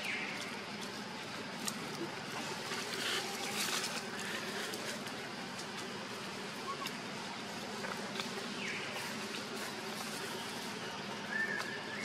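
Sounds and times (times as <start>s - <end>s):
monkey calls: 11.2s - 12.0s.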